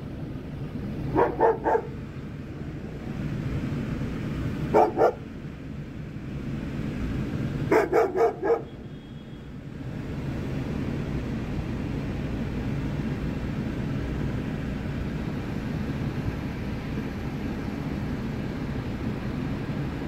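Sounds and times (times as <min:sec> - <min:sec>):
car engine idling: 0:00.0 - 0:06.9.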